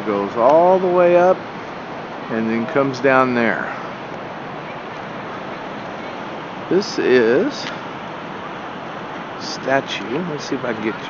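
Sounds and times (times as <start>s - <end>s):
steady rushing noise: 0.0s - 11.0s.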